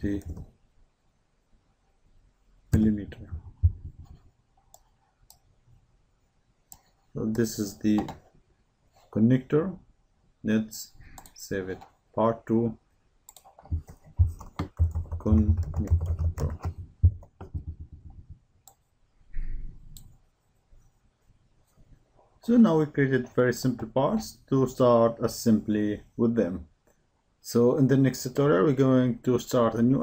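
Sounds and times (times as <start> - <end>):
computer mouse clicks: 11.1 - 11.9, 13.3 - 17.5, 18.6 - 18.9, 19.8 - 20.2
mouse click: 13.3 - 14.0.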